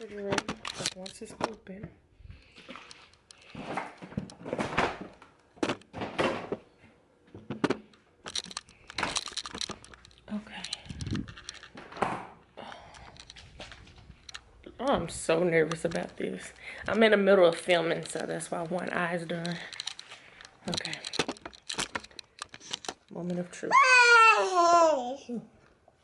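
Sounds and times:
rustling and crinkling: 2.3 - 23.6.

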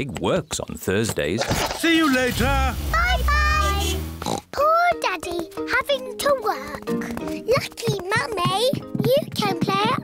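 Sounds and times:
cartoon pig voices oinking: 3.8 - 4.6
light background music: 4.6 - 10.0.

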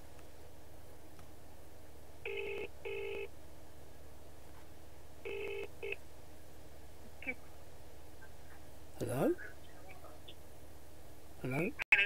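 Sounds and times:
telephone ringback tone: 2.3 - 3.3, 5.2 - 6.0.

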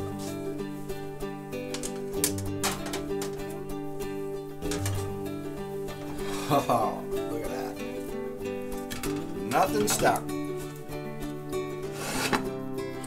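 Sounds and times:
acoustic guitar plucking: 0.0 - 13.0.

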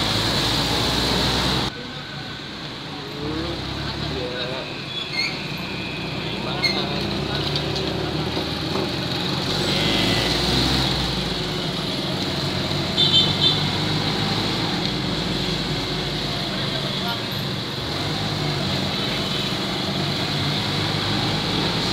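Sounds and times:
road and wind noise: 0.0 - 21.9.

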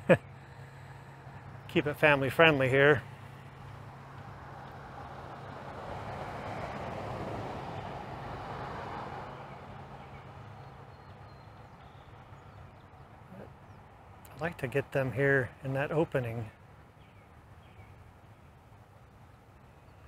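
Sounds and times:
vehicle passing by: 0.2 - 16.6.

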